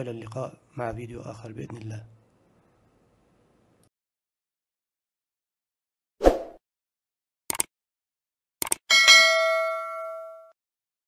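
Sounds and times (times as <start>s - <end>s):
notification bell ding: 8.9s - 10.6s.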